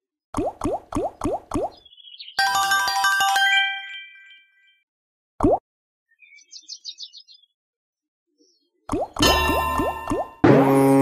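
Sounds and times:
bright chiming jingle: 0:02.4 - 0:04.6.

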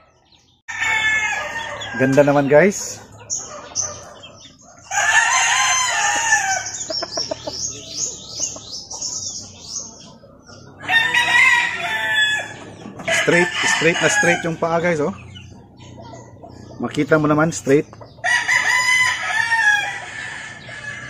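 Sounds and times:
roosters crowing: 0:00.0 - 0:21.0.

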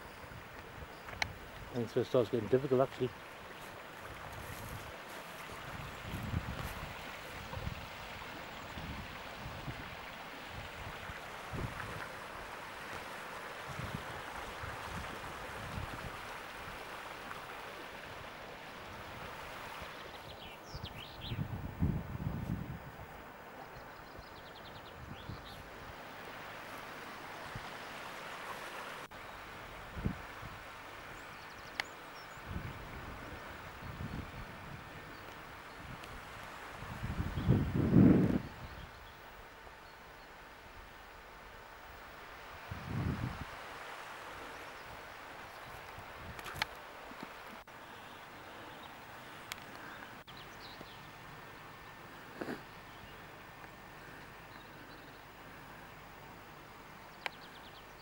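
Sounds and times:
wind on microphone: 0:04.1 - 0:12.2, 0:13.7 - 0:16.8, 0:20.2 - 0:23.2, 0:24.8 - 0:26.0, 0:29.8 - 0:30.6, 0:32.3 - 0:39.1, 0:42.5 - 0:43.6
microphone handling noise: 0:21.5 - 0:22.8.

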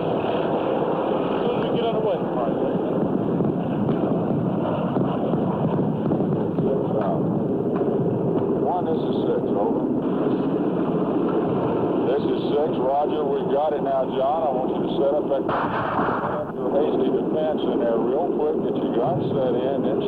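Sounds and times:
gunfire: 0:03.0 - 0:08.6, 0:15.4 - 0:16.6
loud crash: 0:15.5 - 0:16.5.

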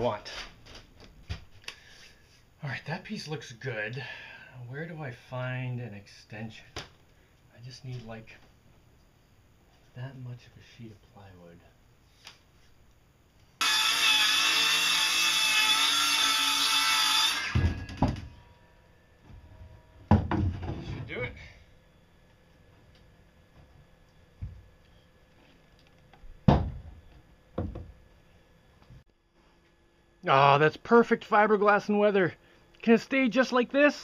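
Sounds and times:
circular saw cutting plywood: 0:13.6 - 0:18.0
wood thumps and knocks: 0:17.6 - 0:18.4, 0:20.1 - 0:21.1, 0:26.4 - 0:28.0.

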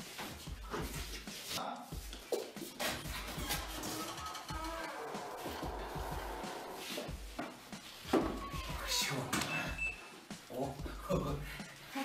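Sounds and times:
music: 0:00.0 - 0:12.0
meow-like cry: 0:08.3 - 0:09.1.

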